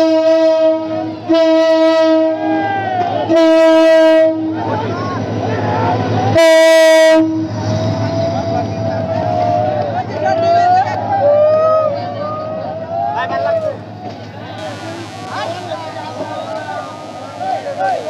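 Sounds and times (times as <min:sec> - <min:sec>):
locomotive air horn blasts: 0:14.6 - 0:18.0.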